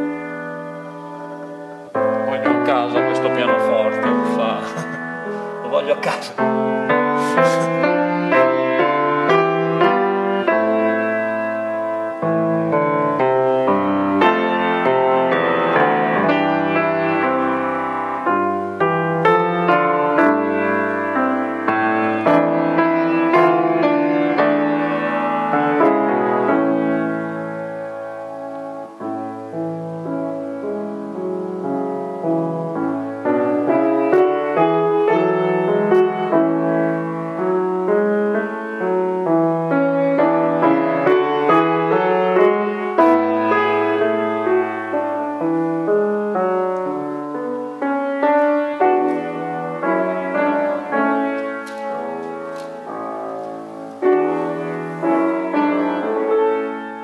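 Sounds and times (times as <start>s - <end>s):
piano music: 0.0s - 57.0s.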